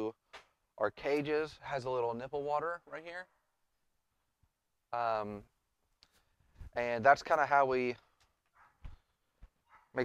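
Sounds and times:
distant dog barking: 8.5s - 8.9s, 9.6s - 10.0s.

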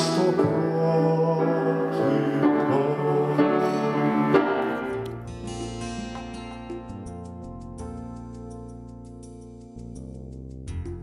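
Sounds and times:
man singing: 0.0s - 5.0s
instrumental accompaniment: 0.0s - 11.0s.

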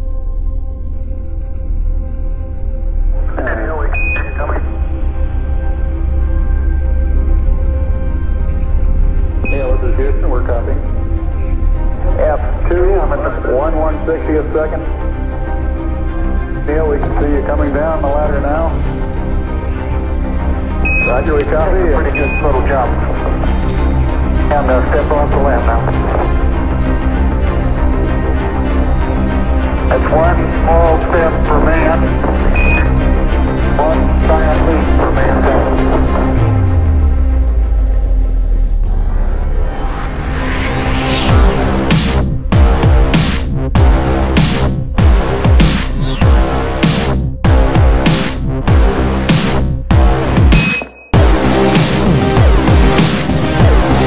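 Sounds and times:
background music with low drone: 0.0s - 54.0s
distorted radio voice: 3.2s - 4.8s, 9.5s - 10.8s, 12.1s - 14.8s, 20.9s - 23.2s, 24.5s - 26.2s, 29.9s - 33.0s
short high beep: 3.9s - 4.4s, 20.9s - 21.3s, 32.6s - 32.9s, 50.6s - 51.2s
high steady beep: 3.9s - 4.8s, 9.4s - 9.9s, 20.8s - 22.7s, 32.4s - 33.1s, 50.5s - 51.3s.

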